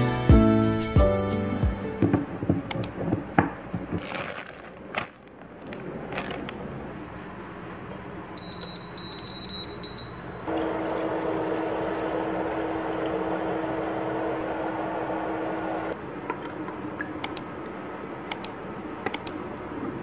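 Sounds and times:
cooktop touch panel beeps: 8.4 - 10.5.

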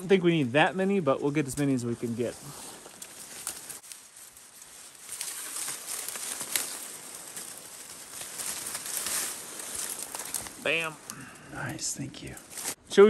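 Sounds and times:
dry reeds rustling and crackling: 0.0 - 13.0.

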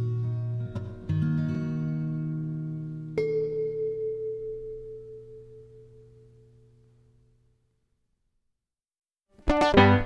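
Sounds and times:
acoustic guitar chord ringing: 0.0 - 7.3.

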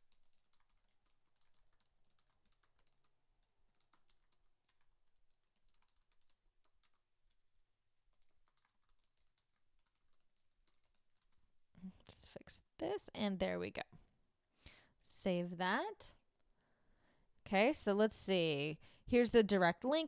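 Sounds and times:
faint typing on keyboard: 0.0 - 12.6.

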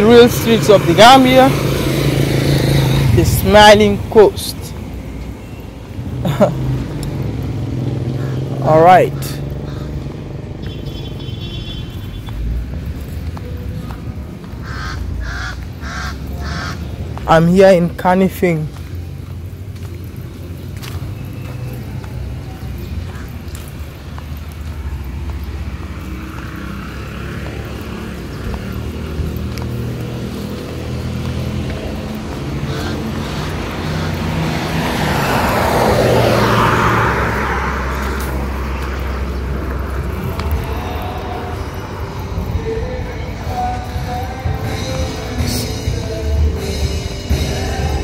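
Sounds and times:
low traffic rumble: 0.0 - 48.0
vehicle passing: 0.0 - 48.0.

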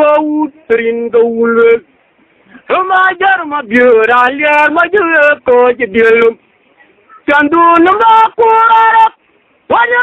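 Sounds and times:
person singing unaccompanied: 0.0 - 10.0.

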